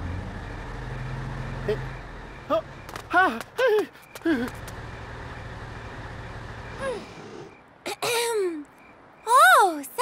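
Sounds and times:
bus engine idling: 0:00.4 - 0:07.8.

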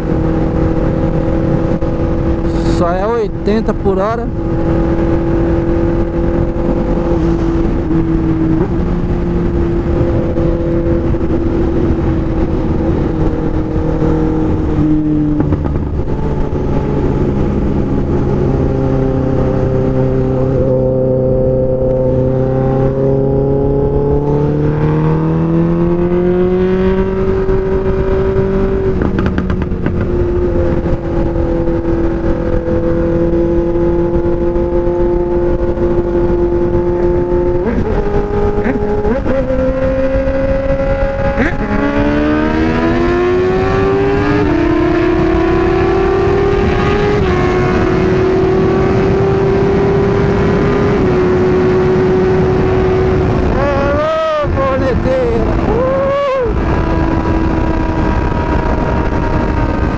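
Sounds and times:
motorcycle engine accelerating: 0:00.0 - 0:59.9.

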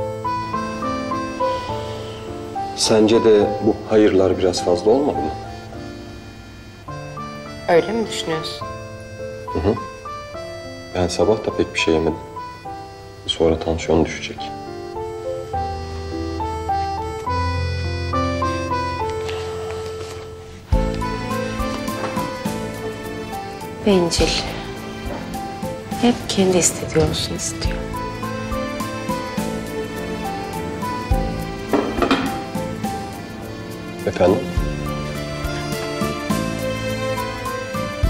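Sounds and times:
background music with sustained notes: 0:00.0 - 0:38.0
slow reedy melody: 0:00.0 - 0:38.0.

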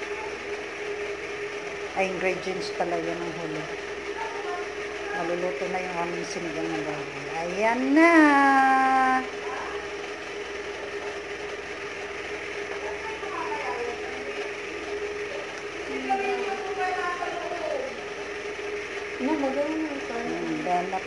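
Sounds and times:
mid-pitched hum: 0:00.0 - 0:21.0
faint voices talking: 0:01.9 - 0:11.5, 0:12.2 - 0:21.0.

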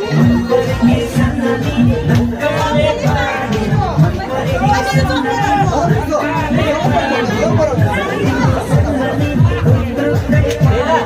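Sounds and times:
dance music: 0:00.0 - 0:11.0
people chattering and calling out: 0:00.0 - 0:11.0.

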